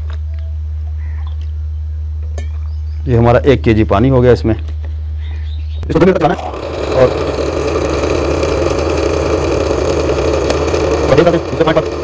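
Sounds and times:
electric blender running: 6.2s - 12.0s.

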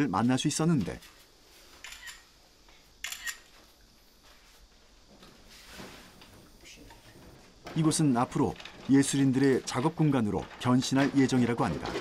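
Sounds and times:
camera shutter click: 1.8s - 2.2s, 3.0s - 3.5s.

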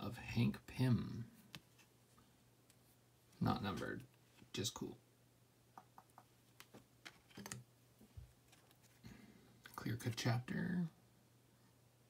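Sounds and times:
cards clicking and tapping: 5.8s - 7.6s.

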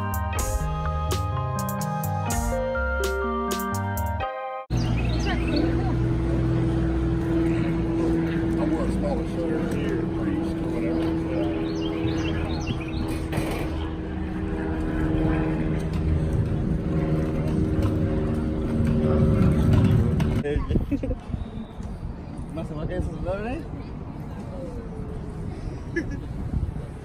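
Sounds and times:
steady low hum: 4.7s - 20.4s.

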